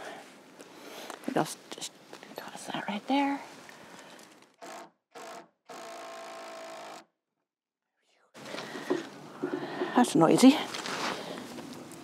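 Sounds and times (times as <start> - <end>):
cordless drill boring into wood: 4.6 - 7.1
rustle of movement: 8.4 - 12.0.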